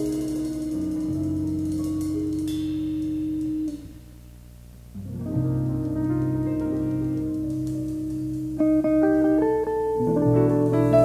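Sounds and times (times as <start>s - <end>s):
jazz combo playing: 0.0s - 11.0s.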